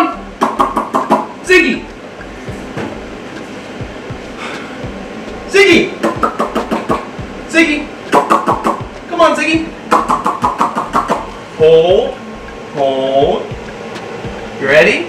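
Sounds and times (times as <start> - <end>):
man making rattling clicking calls: 0.4 - 1.3, 6.0 - 7.1, 8.1 - 8.9, 9.9 - 11.4.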